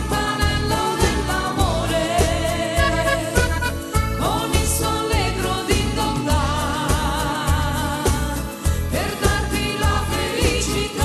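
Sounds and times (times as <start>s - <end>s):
accordion: 0.0s - 6.5s
steady low beat: 2.8s - 4.3s.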